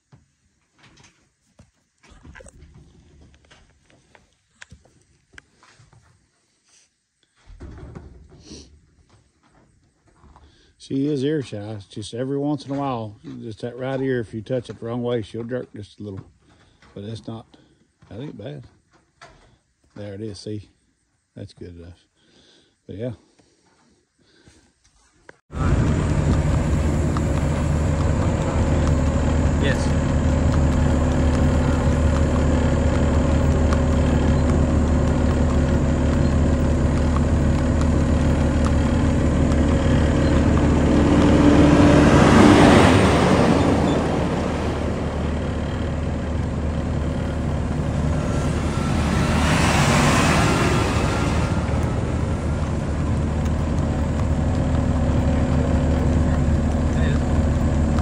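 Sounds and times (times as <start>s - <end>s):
rushing noise: 25.5s - 57.5s
road noise: 25.5s - 58.0s
vehicle engine humming: 25.5s - 58.0s.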